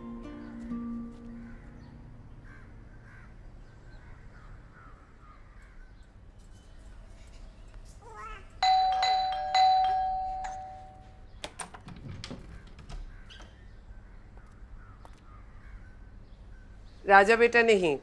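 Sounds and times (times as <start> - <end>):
doorbell chime: 8.6 - 11.2.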